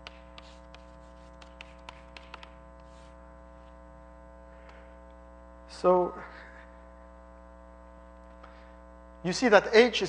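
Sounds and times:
electrical mains hum: 0:00.0 - 0:10.0
man speaking: 0:05.7 - 0:06.5, 0:09.3 - 0:10.0.

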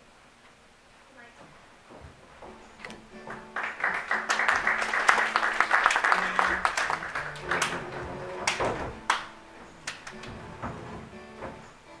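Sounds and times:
faint music: 0:00.3 - 0:12.0
knocks and bumps on stage: 0:01.4 - 0:03.6, 0:06.2 - 0:11.8.

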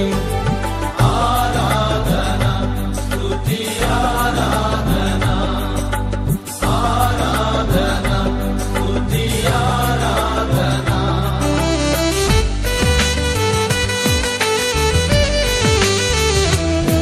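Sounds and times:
worship music with bass and drums: 0:00.0 - 0:17.0.

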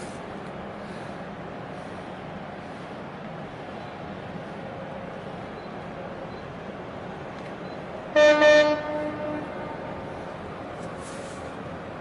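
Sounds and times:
horn blast: 0:08.2 - 0:10.0.

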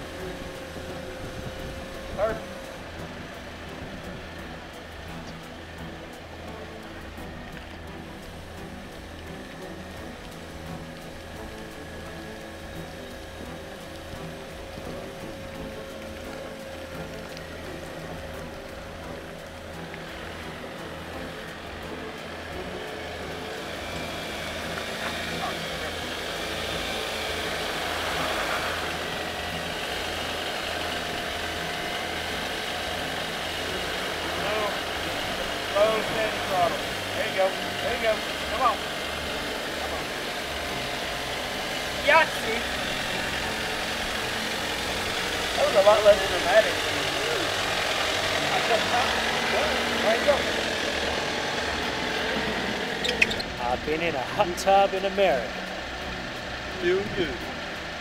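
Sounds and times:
off-road vehicle engine crawling: 0:00.0 - 0:58.0.

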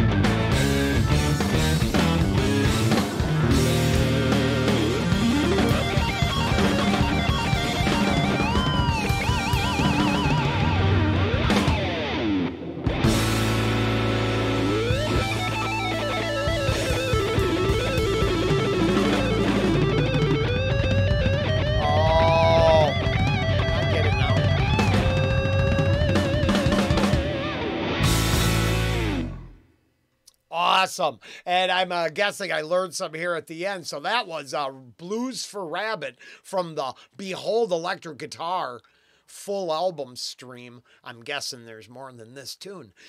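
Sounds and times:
drums: 0:00.0 - 0:29.6
electric guitar blues lead: 0:00.0 - 0:29.7.

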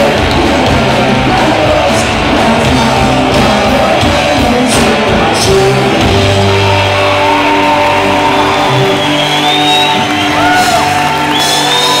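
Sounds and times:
punk rock band playing live: 0:00.0 - 0:12.0.

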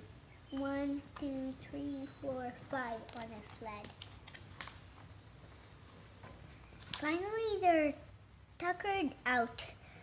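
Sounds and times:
paper page turning: 0:03.0 - 0:04.8.

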